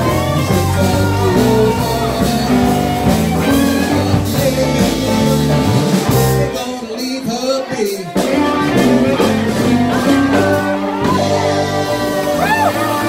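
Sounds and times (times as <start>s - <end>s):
bass guitar: 0.0s - 13.0s
drum kit: 0.0s - 13.0s
electric guitars: 0.0s - 13.0s
keyboard: 0.0s - 13.0s.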